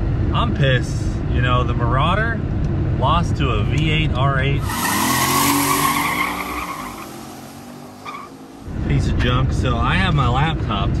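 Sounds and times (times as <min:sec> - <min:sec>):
car engine running: 0:04.5 - 0:10.3
squealing whine: 0:04.6 - 0:08.4.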